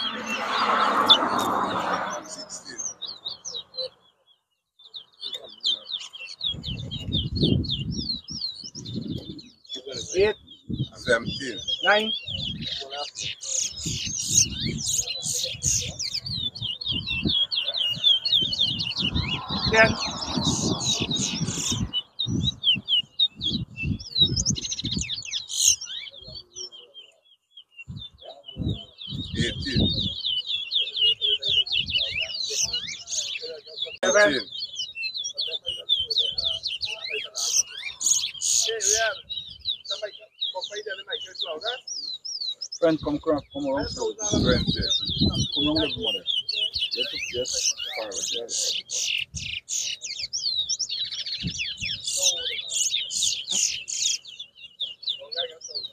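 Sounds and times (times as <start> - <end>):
finch singing rapid chirps: 0.0 - 55.9.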